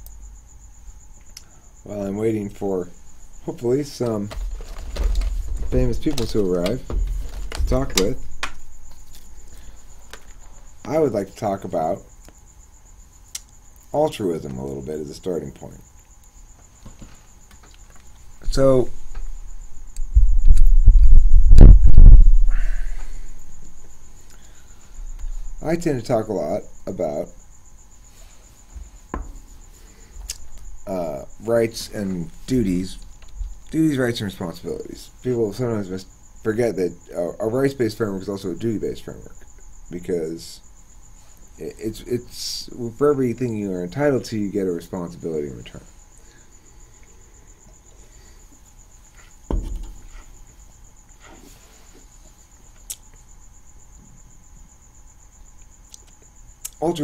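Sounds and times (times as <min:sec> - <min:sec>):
low background hiss: 0:00.0 - 0:57.0
microphone handling rumble: 0:04.2 - 0:08.4, 0:20.0 - 0:22.8
knocks on microphone: 0:49.5 - 0:50.0.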